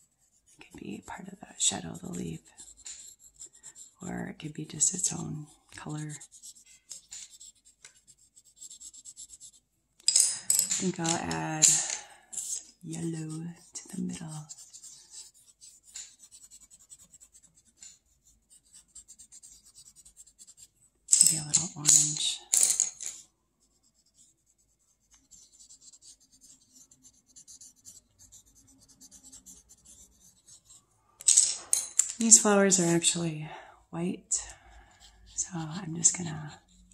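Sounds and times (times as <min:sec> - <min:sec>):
colored pencil scratching paper: 0:00.0 - 0:09.7, 0:10.8 - 0:31.4, 0:34.2 - 0:36.9
pencil clattering down: 0:10.0 - 0:12.7, 0:31.2 - 0:32.4.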